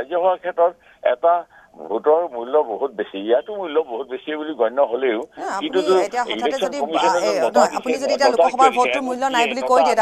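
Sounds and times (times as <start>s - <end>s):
man speaking over telephone: 0.0s - 10.0s.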